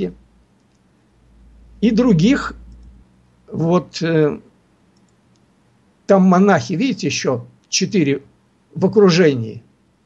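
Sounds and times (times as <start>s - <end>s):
faint clicks: 0.5s - 0.9s, 2.6s - 3.0s, 4.9s - 5.5s.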